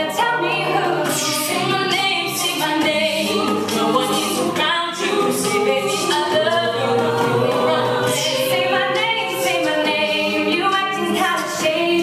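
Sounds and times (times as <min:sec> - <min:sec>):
a cappella group singing: 0:00.0 - 0:12.0
vocal percussion beats: 0:00.0 - 0:12.0.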